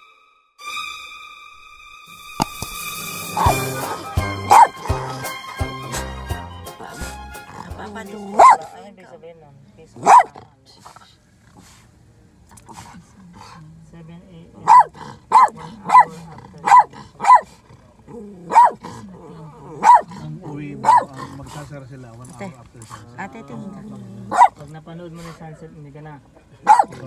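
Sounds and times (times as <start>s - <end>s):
small dog yapping: 2.6s - 5.0s, 8.4s - 8.8s, 10.0s - 10.4s, 14.6s - 17.5s, 18.4s - 18.8s, 19.7s - 20.2s, 20.8s - 21.2s, 24.3s - 24.6s, 26.7s - 27.0s.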